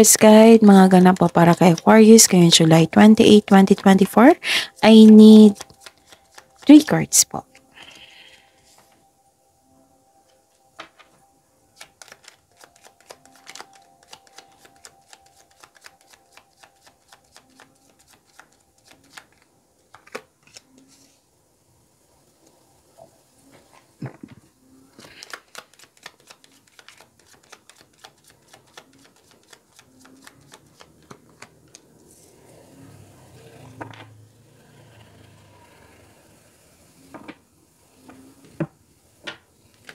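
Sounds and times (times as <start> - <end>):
cards being shuffled: 4.8 - 7.7, 11.8 - 21.2, 24.9 - 32.3.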